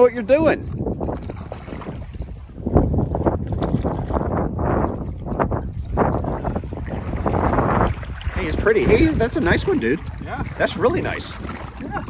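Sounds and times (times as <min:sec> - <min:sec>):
wind buffeting microphone: 0:00.0 - 0:12.0
splashing of river water: 0:00.6 - 0:12.0.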